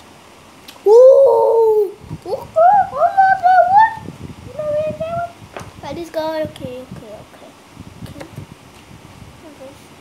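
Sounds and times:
boy exclaiming ooh: 0.8 - 5.4
boy whooping: 0.8 - 5.4
boy sing-song vocalizing: 0.9 - 5.3.

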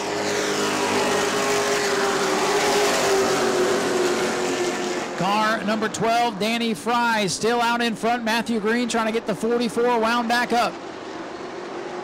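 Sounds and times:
race cars passing at high revs: 0.0 - 12.0.

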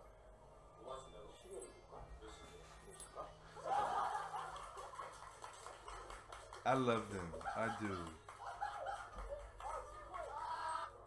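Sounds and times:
laughter: 3.6 - 5.3, 7.6 - 9.5.

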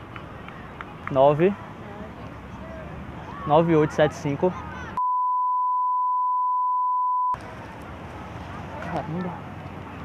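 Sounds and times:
censor bleep: 5.0 - 7.4.

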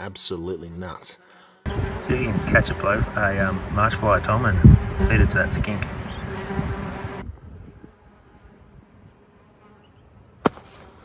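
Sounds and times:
fly buzzing: 1.2 - 11.0.

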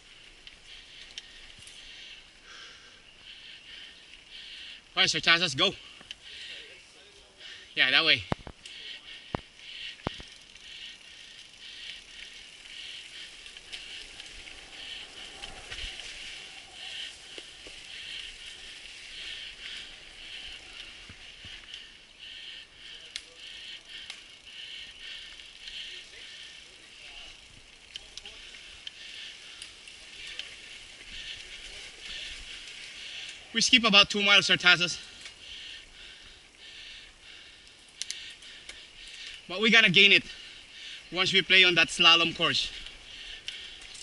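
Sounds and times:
mountain bike riding on dirt: 0.0 - 44.0.

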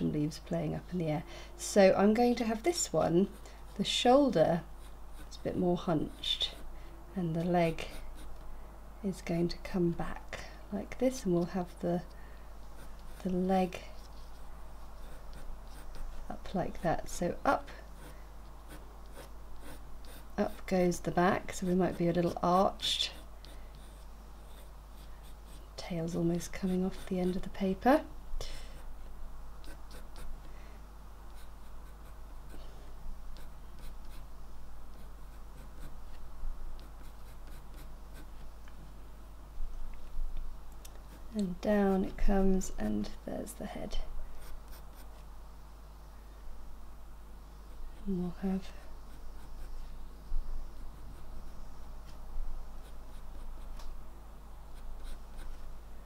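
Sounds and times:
pencil scratching on paper: 7.4 - 8.3, 12.8 - 13.4, 15.0 - 17.1, 18.0 - 20.7, 26.5 - 27.4, 29.6 - 30.3, 33.4 - 34.2, 36.8 - 38.4, 49.0 - 49.9, 54.8 - 55.6.

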